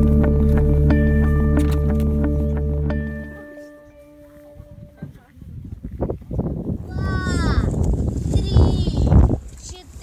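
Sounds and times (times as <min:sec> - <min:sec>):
rumbling microphone noise: 0:04.3 - 0:10.0
child's high-pitched voice: 0:06.9 - 0:10.0.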